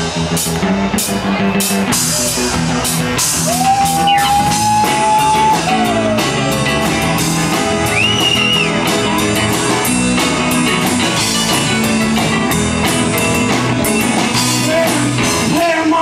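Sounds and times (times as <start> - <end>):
live rock band instrumental: 0.0 - 16.0.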